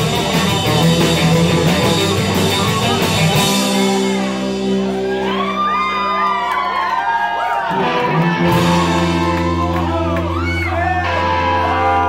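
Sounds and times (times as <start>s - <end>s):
gliding high guitar notes: 0.0s - 6.5s, 7.7s - 12.0s
rock band playing live: 0.0s - 12.0s.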